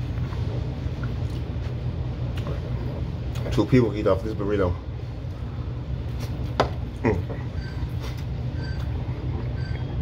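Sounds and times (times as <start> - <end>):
person chewing food: 0.0 - 3.4
low machinery hum: 0.0 - 10.0.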